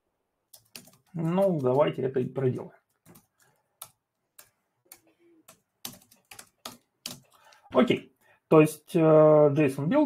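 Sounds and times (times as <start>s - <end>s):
computer keyboard typing: 0.5s - 7.6s.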